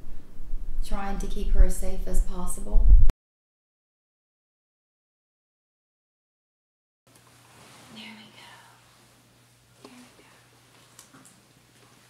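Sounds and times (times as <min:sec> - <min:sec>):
steady low hum: 0:00.0 - 0:03.1, 0:07.1 - 0:12.0
woman speaking quietly: 0:07.9 - 0:08.8, 0:09.8 - 0:10.5.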